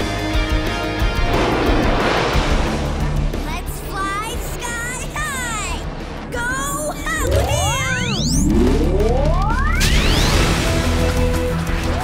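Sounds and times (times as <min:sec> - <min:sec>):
cartoon soundtrack music: 0:00.0 - 0:12.0
whoosh: 0:01.1 - 0:10.8
zooming sound effect rising in pitch: 0:07.2 - 0:10.3.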